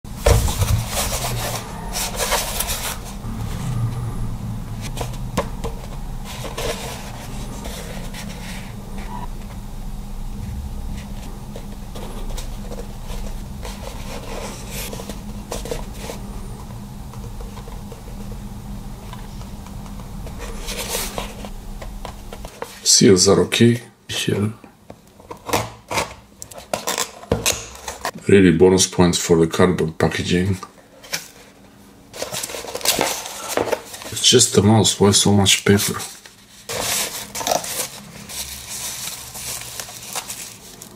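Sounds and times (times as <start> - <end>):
low hum: 0.1 - 22.8.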